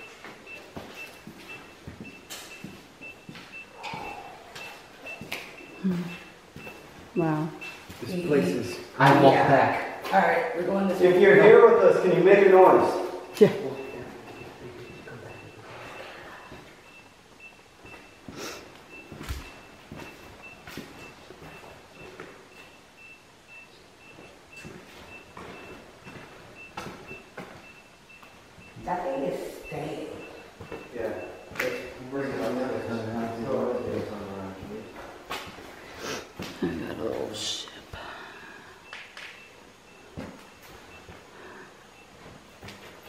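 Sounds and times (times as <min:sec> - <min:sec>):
high-pitched electronic beeping: 0:00.0 - 0:09.8, 0:11.3 - 0:34.1
low voices: 0:03.7 - 0:06.3.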